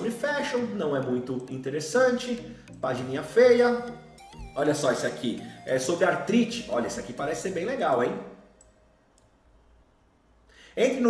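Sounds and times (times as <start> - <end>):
faint computer mouse clicks: 8.6 - 9.4.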